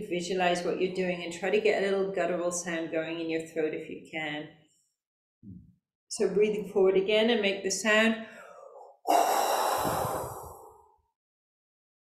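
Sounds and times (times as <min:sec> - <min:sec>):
woman's guttural breathy exhalation: 0:08.3 - 0:11.0.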